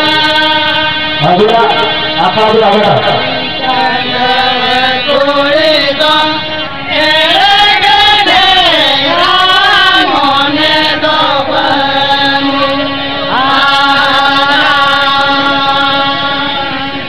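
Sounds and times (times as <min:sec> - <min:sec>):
men singing together: 0:00.0 - 0:02.2, 0:03.1 - 0:17.0
harmonium: 0:00.0 - 0:17.0.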